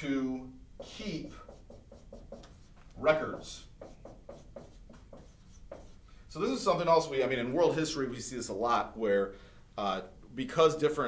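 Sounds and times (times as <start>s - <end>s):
marker writing on whiteboard: 0.8s - 6.1s.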